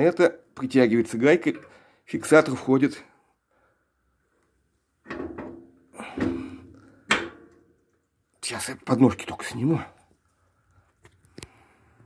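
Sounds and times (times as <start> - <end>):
steel hitch parts clunking: 5.0 - 7.7.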